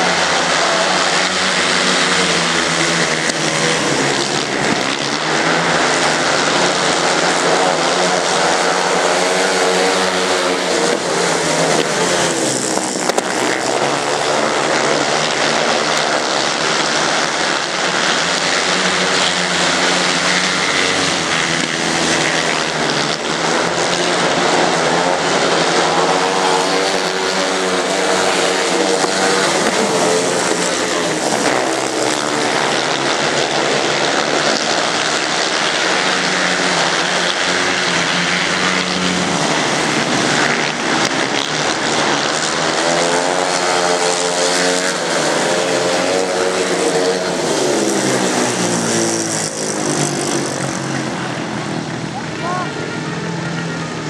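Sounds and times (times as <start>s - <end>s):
motorcycle engines racing past: 0.0s - 54.0s.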